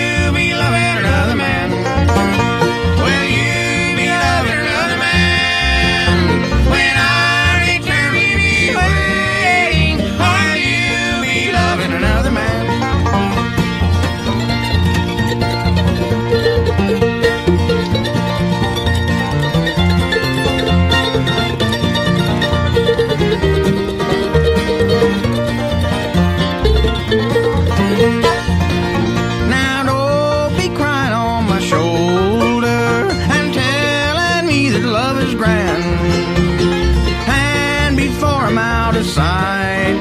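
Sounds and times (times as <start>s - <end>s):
person singing: 0.0s - 12.8s, 29.4s - 40.0s
bluegrass band playing: 0.0s - 40.0s.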